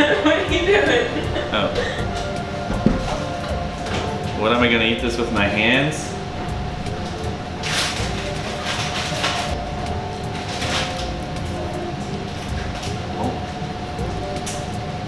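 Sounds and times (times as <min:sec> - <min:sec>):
steady tonal hum: 0:00.0 - 0:15.0
low rumble: 0:00.3 - 0:14.2.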